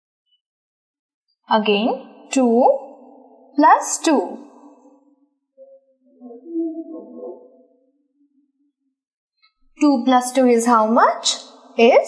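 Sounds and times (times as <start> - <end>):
woman speaking: 1.5 - 2.9, 3.6 - 4.5, 9.8 - 12.0.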